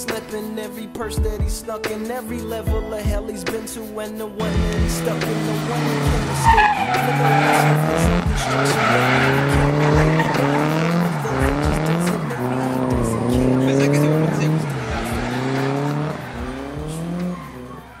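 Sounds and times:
car engine revving: 0:04.4 - 0:18.0
tyres squealing: 0:04.4 - 0:18.0.

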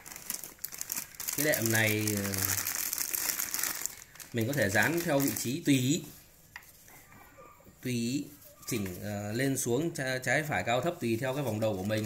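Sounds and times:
plastic bag crinkling: 0:00.0 - 0:06.0.

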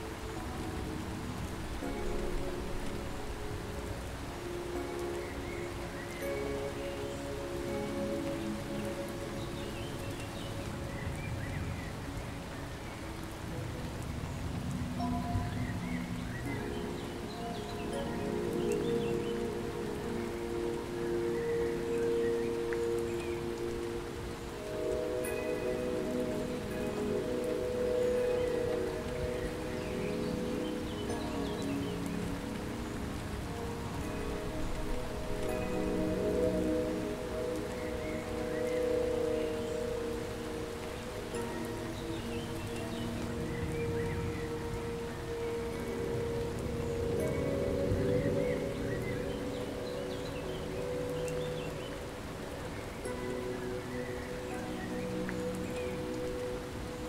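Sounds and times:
calm ambient chime music: 0:00.0 - 0:57.0
steady hiss: 0:00.0 - 0:57.0.

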